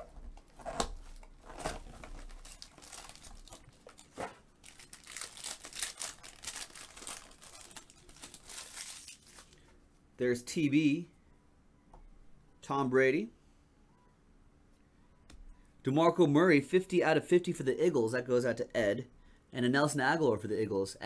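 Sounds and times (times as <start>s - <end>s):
foil wrapper tearing and crinkling: 0.7s - 9.6s.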